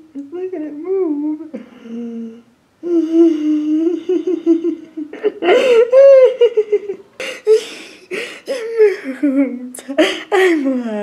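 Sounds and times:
woman laughing nervously: 3.8s - 9.4s.

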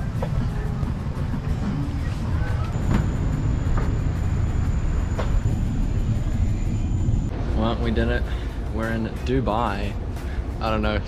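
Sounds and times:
high-pitched whine: 0.0s - 8.0s
low mechanical rumble: 0.0s - 10.6s.

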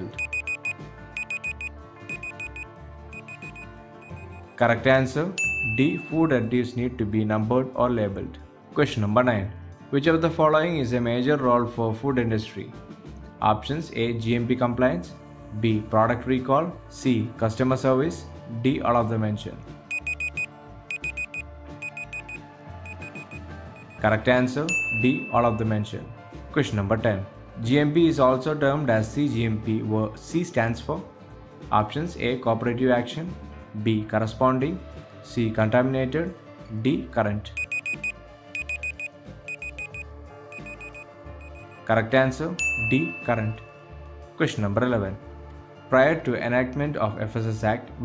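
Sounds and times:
quick high electronic beeps: 0.0s - 4.6s, 19.9s - 24.0s, 37.6s - 41.8s
soft background music: 0.0s - 48.0s.

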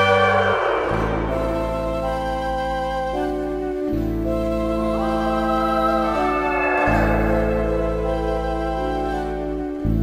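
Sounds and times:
echoing guitar notes: 5.4s - 8.7s.

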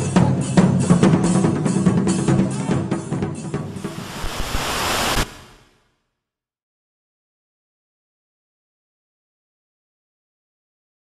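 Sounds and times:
static hiss: 3.7s - 5.9s.

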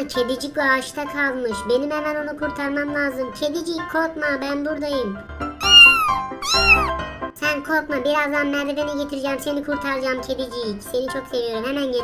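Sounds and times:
background music: 0.0s - 12.0s
kitten meowing: 5.6s - 7.0s.

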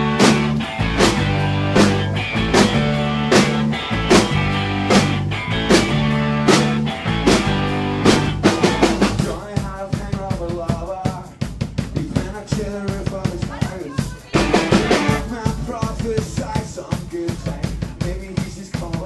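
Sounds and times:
electric guitar and bass chords: 0.0s - 9.4s, 14.3s - 16.6s
drum hits: 0.0s - 19.0s.

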